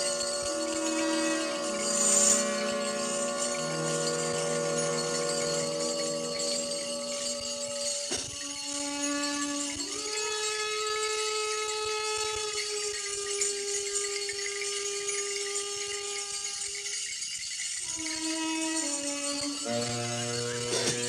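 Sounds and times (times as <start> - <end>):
high shimmer: 0.0 - 21.0.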